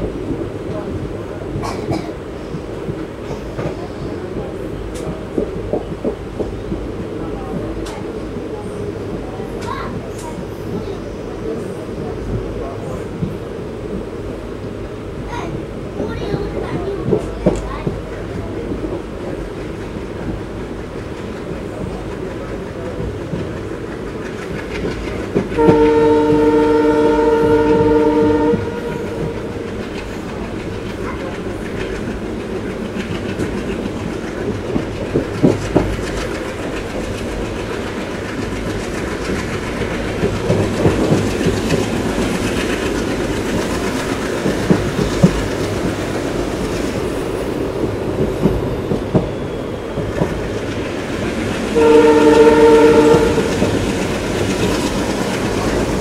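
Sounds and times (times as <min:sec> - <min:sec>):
train wheels clattering: 0:00.0 - 0:14.1, 0:15.3 - 0:56.0
moving train rumble: 0:00.0 - 0:56.0
locomotive horn blasts: 0:25.6 - 0:29.7, 0:51.8 - 0:53.7.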